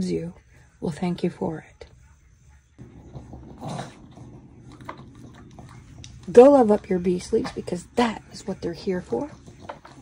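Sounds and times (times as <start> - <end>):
dog whimpering grumble: 2.9 - 5.9.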